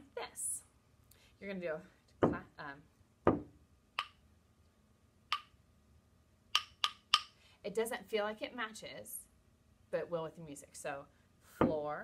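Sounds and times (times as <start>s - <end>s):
wooden stick knocking on floor: 2.2s - 2.4s, 3.3s - 4.1s
rhythm sticks clicking: 4.0s - 4.2s, 5.3s - 5.6s, 6.5s - 7.4s.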